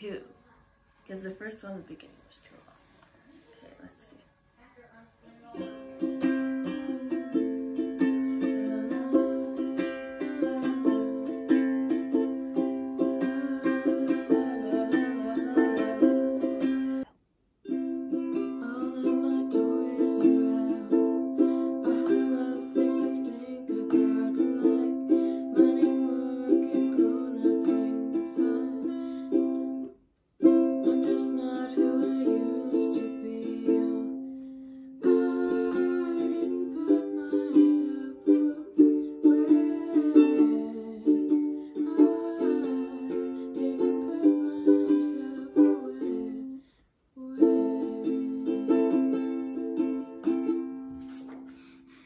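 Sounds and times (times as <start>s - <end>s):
ukulele strumming chords: 5.5s - 52.0s.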